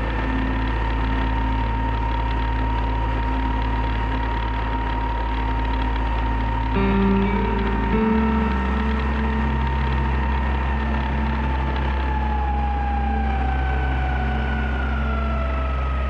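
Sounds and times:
outboard motor running: 0.0 - 16.0.

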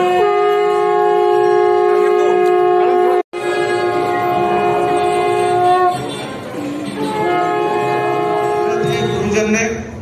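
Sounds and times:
faint crowd: 0.0 - 10.0.

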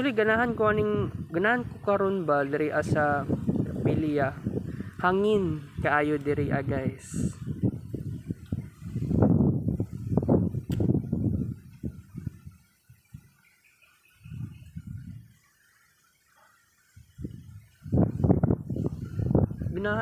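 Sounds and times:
sharp click: 10.6 - 10.9.

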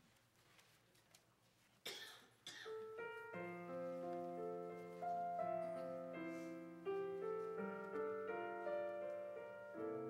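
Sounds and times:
person coughing: 1.9 - 2.8.

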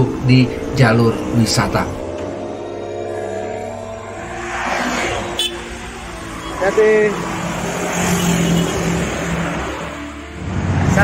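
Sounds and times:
traffic passing: 0.0 - 11.0.

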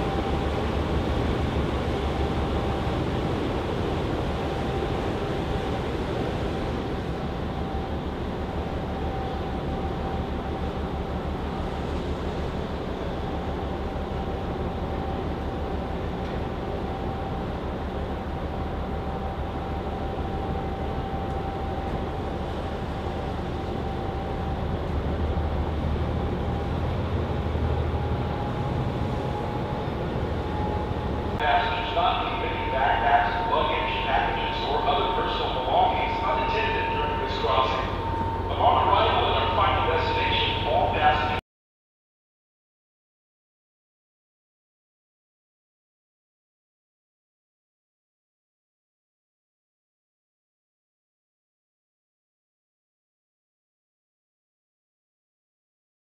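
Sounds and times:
ship diesel engine rumble: 0.0 - 41.4
thin steady whine: 0.0 - 41.4.

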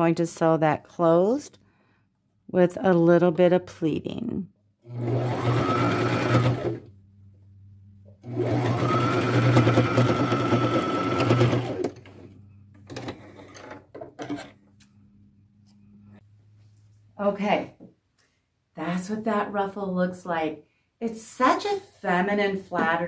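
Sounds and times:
sewing machine stitching: 4.8 - 6.9, 8.2 - 14.5.

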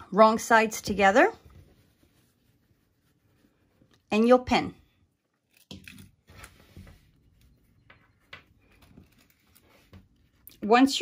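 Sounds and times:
fabric rustling: 0.8 - 4.3, 5.0 - 10.5.

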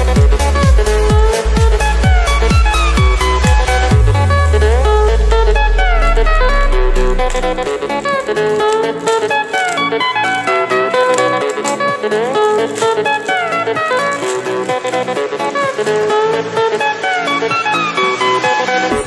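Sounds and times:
guitar-led background music: 0.0 - 19.0
deep low tone: 3.9 - 7.7.

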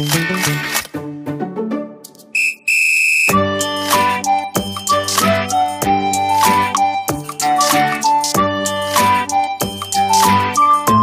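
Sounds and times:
music: 0.0 - 2.4, 3.3 - 11.0
high-pitched whistle: 2.4 - 3.4.

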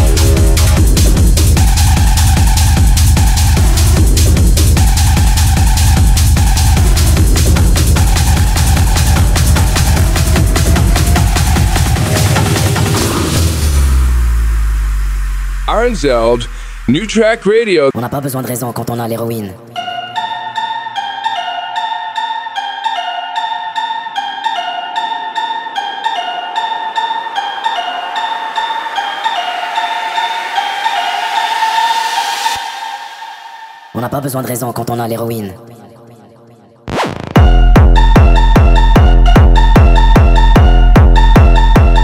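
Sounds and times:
synth melody of stepped notes: 0.0 - 14.8, 19.6 - 32.8
deep bass note: 13.0 - 17.6.

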